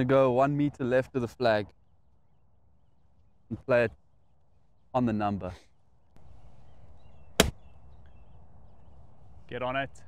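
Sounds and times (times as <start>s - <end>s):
golf club striking ball: 7.4s - 7.6s.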